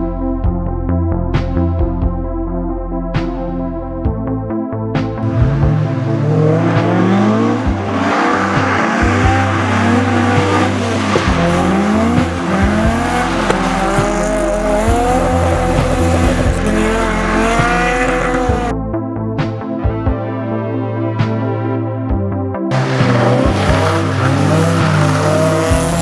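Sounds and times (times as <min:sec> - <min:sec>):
car engine revving hard: 0:05.2 - 0:18.7, 0:22.7 - 0:26.0.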